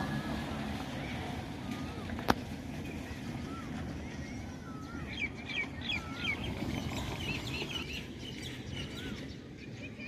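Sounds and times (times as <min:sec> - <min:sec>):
small birds chirping: 0:02.8 - 0:10.0.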